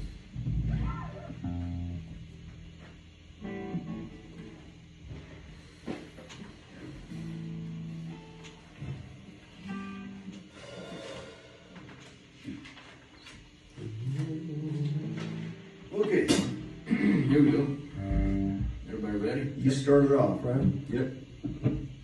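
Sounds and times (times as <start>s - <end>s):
electric guitars noodling: 0.0s - 22.0s.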